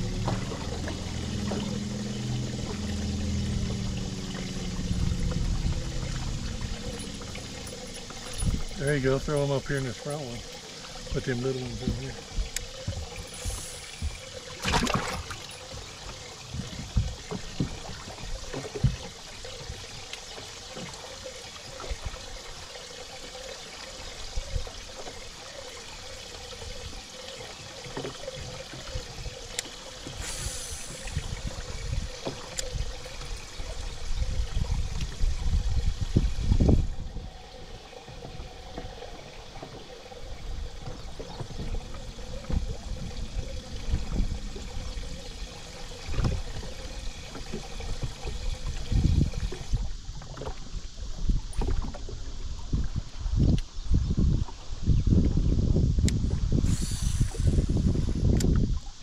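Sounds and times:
wind rumble on microphone: 0.0s - 20.1s, 28.2s - 59.0s
waves lapping against boat hull: 0.0s - 59.0s.

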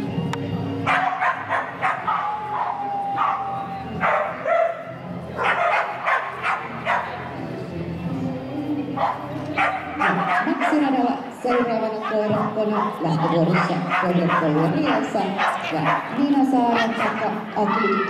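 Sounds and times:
background music: 0.0s - 18.0s
dog whining: 0.9s - 3.6s
dog barking and yipping: 0.9s - 4.8s, 5.4s - 7.1s, 9.0s - 10.9s, 11.5s - 18.0s.

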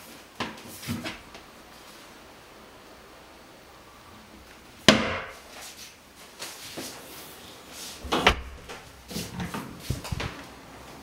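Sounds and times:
door latch clunk: 8.1s - 8.8s.

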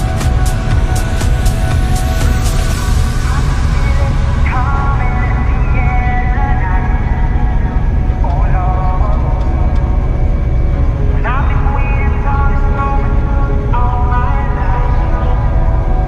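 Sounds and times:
combine harvester rumble: 0.0s - 16.0s
music with vocals: 0.0s - 16.0s.

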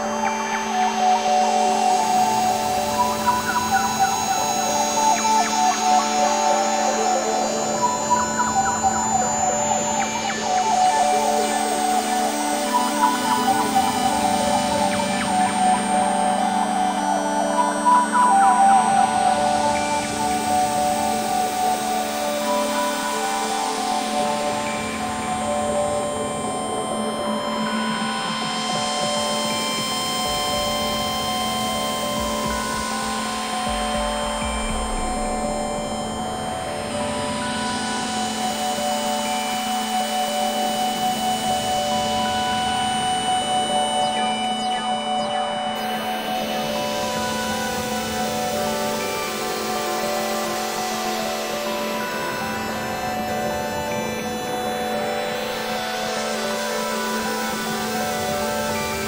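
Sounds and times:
low drone: 0.0s - 55.4s
synthesizer pad tones: 0.0s - 59.0s.

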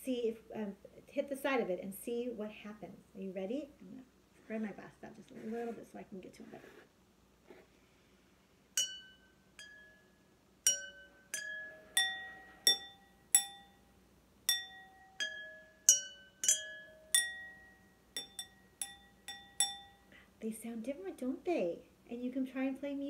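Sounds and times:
pencil tapping water glasses: 8.8s - 9.9s, 10.7s - 13.7s, 14.5s - 20.0s.

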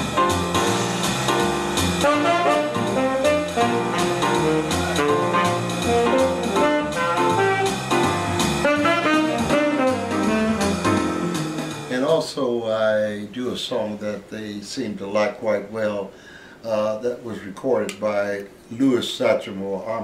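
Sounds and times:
walking bass line: 0.0s - 11.8s
saxophone playing jazz melody: 0.0s - 11.9s
drums: 0.0s - 12.2s.

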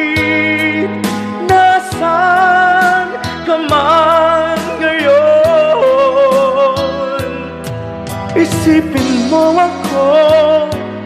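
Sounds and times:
recorded backing track: 0.0s - 11.0s.

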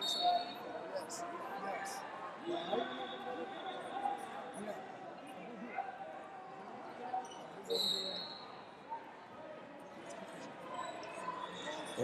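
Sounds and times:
distant chatter of many people: 0.0s - 12.0s.

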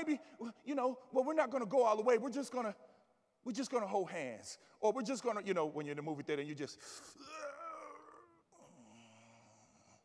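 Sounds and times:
man yawning groan: 7.1s - 10.0s.

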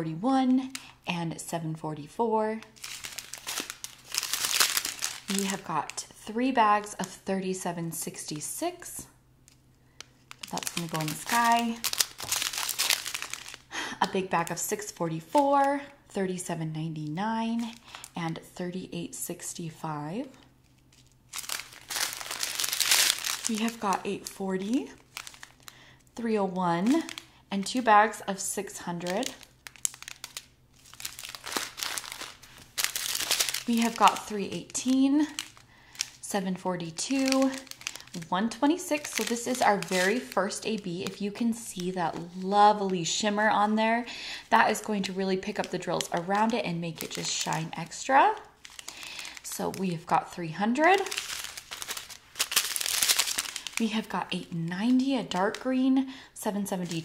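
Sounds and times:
plastic bags crinkling: 0.4s - 1.0s, 2.4s - 7.1s, 9.5s - 16.0s, 17.4s - 18.4s, 20.2s - 57.0s.

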